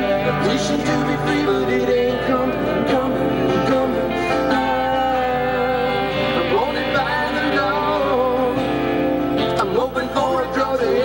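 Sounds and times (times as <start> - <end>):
live band with guitars: 0.0 - 11.0
person singing: 0.0 - 11.0.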